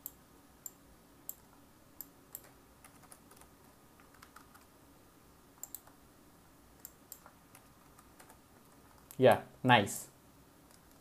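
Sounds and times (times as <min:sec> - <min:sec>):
mouse and keyboard clicks: 0:00.0 - 0:04.7, 0:05.6 - 0:06.0, 0:06.8 - 0:09.2, 0:10.7 - 0:11.0.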